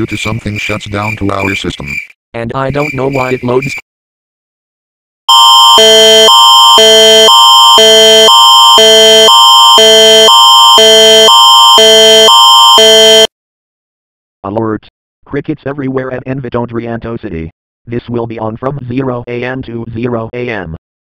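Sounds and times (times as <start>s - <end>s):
electronic two-tone alarm: 5.3s - 13.3s.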